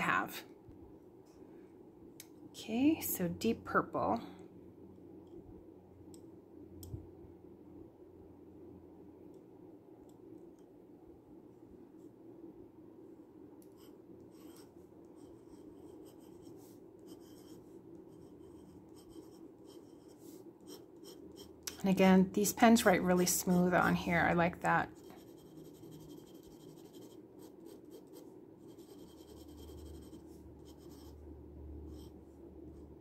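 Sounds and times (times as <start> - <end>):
glass pen scratching on paper: 25.0 - 31.2.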